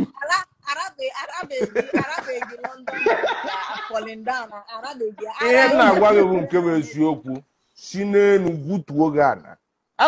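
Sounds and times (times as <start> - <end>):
people laughing and talking: 0.0 - 7.4.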